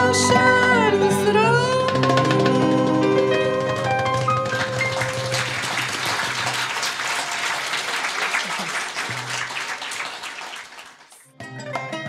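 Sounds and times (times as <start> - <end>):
audience applauding: 2.0 - 11.3.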